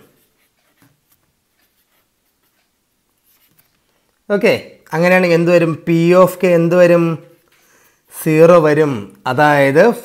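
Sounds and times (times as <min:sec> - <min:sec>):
felt-tip pen scratching on paper: 0:00.2 - 0:03.7.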